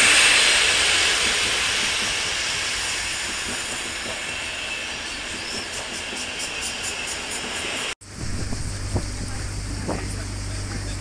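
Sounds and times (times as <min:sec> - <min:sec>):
train wheels rushing on rails: 0:00.0 - 0:11.0
boat engine low hum: 0:08.0 - 0:11.0
wind on microphone: 0:08.0 - 0:11.0.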